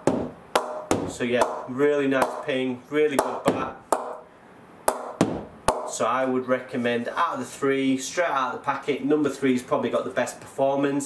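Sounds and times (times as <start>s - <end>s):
ball knocking on cricket bat: 0.0s - 2.5s, 3.2s - 4.2s, 4.9s - 5.9s.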